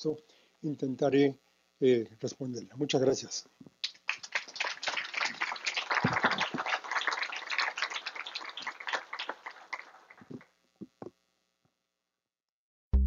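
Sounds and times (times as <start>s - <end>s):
audience applauding: 3.8s - 10.4s.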